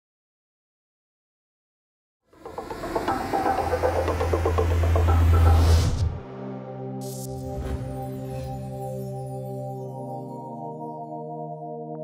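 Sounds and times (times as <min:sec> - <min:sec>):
deep electronic drone: 0:02.4 - 0:09.0.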